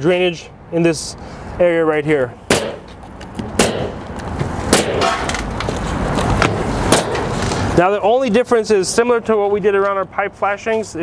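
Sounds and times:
roofing nailer firing nails: 2.5s - 2.9s, 3.5s - 4.0s, 4.7s - 5.3s, 6.4s - 7.4s.

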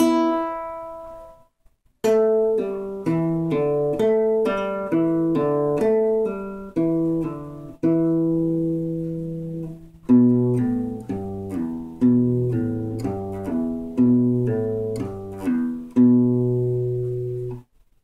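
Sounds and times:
acoustic guitar plucked notes: 0.0s - 17.7s.

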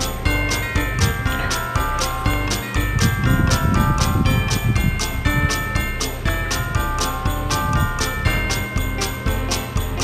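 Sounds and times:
bell-like melody: 0.0s - 10.0s
jingle bells shaken on a beat: 0.0s - 10.0s.

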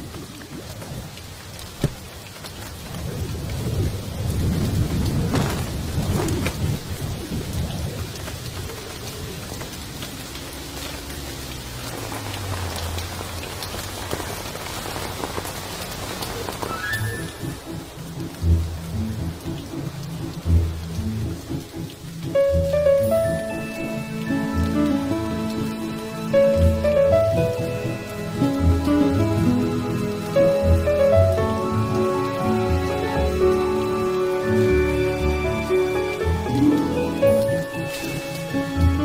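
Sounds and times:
steady rain: 0.0s - 39.0s
low rumble of thunder: 2.7s - 10.6s
music with deep bass notes: 17.7s - 39.0s.

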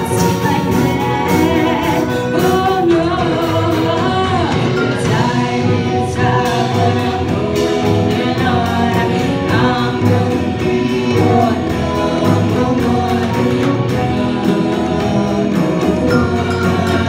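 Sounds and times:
group vocals: 0.0s - 17.0s
live band playing: 0.0s - 17.0s.

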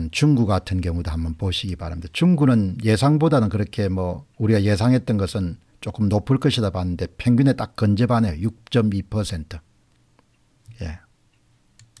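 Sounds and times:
man speaking: 0.0s - 9.6s, 10.7s - 11.1s
computer mouse clicks: 11.7s - 12.0s.

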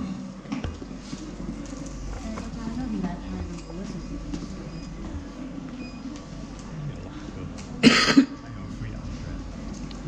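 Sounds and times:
murmur of voices: 0.0s - 10.0s
person coughing: 7.8s - 8.4s.

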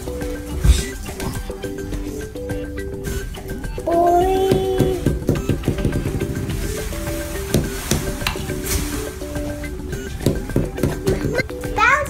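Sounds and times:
background music simple melody: 0.0s - 12.0s
plastic wrapper crinkling: 6.4s - 9.8s.

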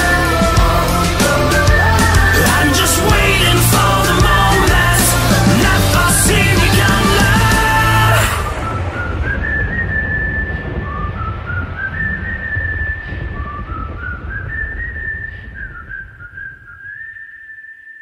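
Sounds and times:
whistled melody: 0.0s - 18.0s
low rumbling bed: 1.6s - 16.9s.

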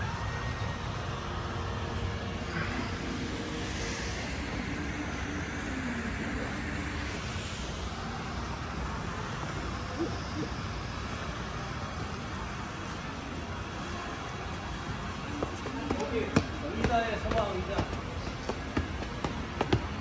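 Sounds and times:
distant traffic hum: 0.0s - 20.0s.

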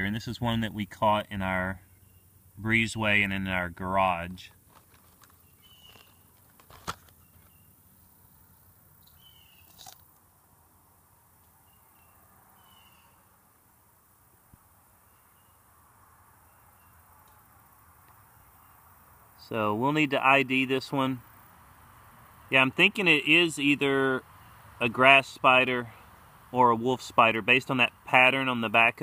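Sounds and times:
distant bird chirping: 0.0s - 4.6s, 5.2s - 29.0s.

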